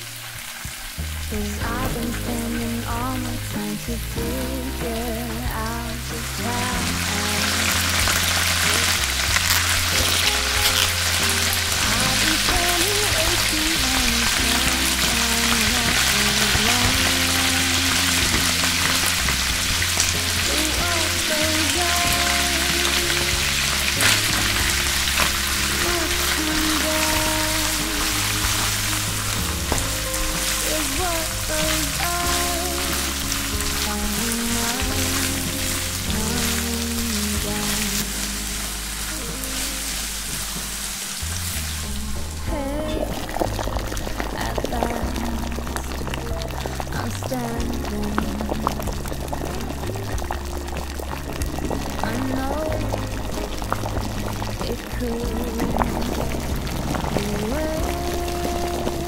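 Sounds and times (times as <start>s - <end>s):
background music with bass: 0.0s - 59.0s
oil sizzling in a pan: 6.3s - 42.4s.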